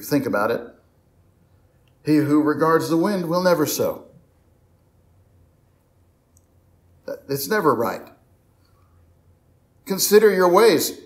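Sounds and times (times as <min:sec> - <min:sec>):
faint low hum: 0:00.0 - 0:11.0
faint click: 0:06.3 - 0:06.6.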